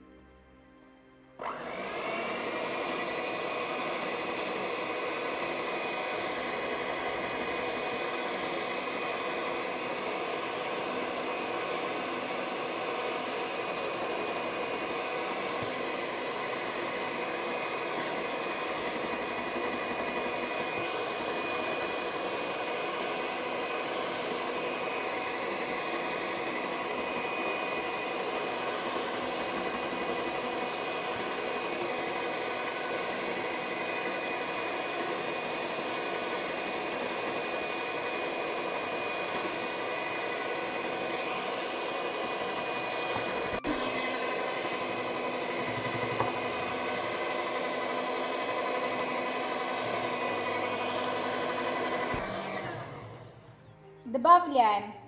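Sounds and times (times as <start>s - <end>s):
electric hand mixer whisking: 1.4s - 53.5s.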